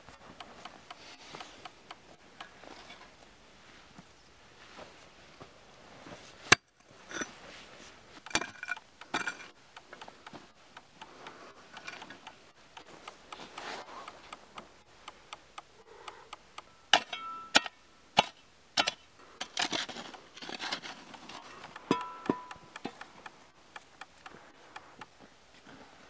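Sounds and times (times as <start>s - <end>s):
shovel striking stone: 8.3s - 9.5s, 16.9s - 23.0s
shovel scraping through gravel: 19.4s - 21.5s.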